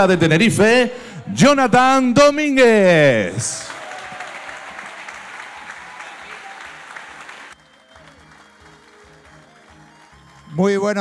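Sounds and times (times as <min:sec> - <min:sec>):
audience applauding: 0:03.4 - 0:11.0
music: 0:05.1 - 0:11.0.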